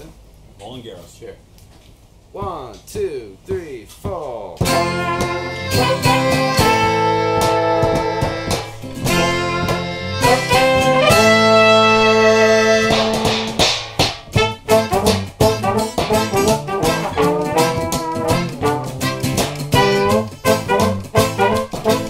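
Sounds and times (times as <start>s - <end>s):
strummed acoustic guitars: 4.6s - 22.0s
trombone and trumpet melody: 4.6s - 22.0s.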